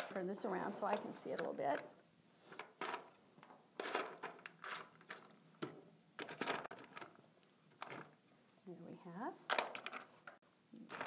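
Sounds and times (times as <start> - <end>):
loose nuts clattering: 2.6 - 7.2.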